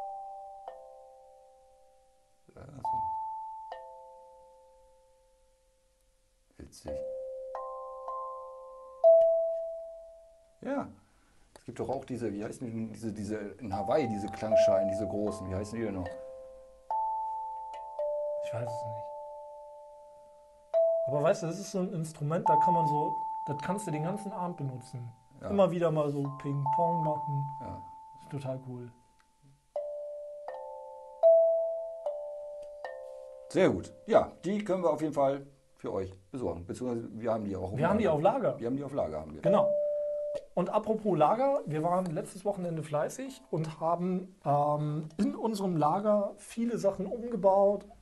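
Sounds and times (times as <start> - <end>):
steel tongue drum notes: 0.0 - 1.8, 2.4 - 10.9, 11.8 - 35.5, 37.7 - 48.0
steel tongue drum note: 13.6 - 29.0, 39.4 - 40.9.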